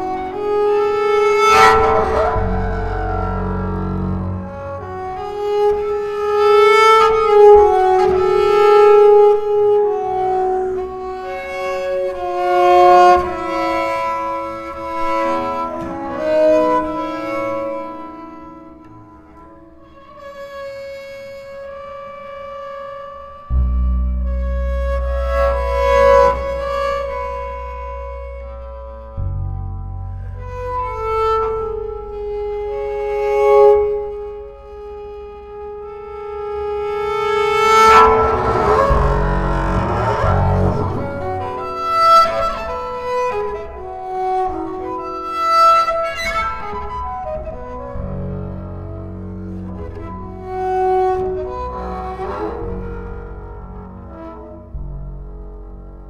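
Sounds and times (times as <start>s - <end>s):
bowed double bass melody: 0.0s - 56.0s.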